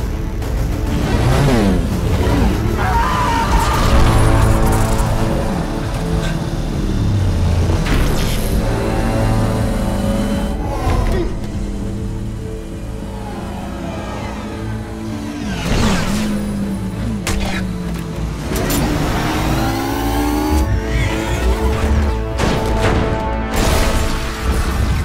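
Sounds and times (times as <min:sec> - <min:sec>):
film score music: 0:00.0 - 0:25.0
futuristic engines humming: 0:00.0 - 0:25.0.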